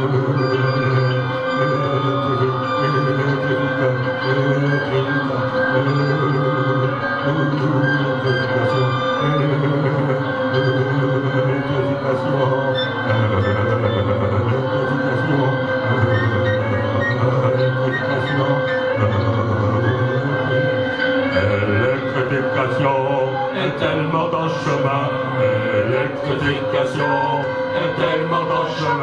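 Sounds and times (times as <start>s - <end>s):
electric guitar and synthesizer music: 0.0s - 29.0s.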